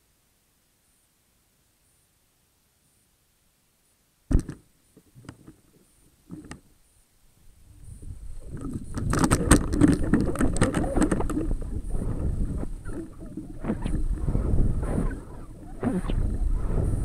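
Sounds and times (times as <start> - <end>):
crackling rattles: 7.8 - 17.0
rushing air: 11.3 - 17.0.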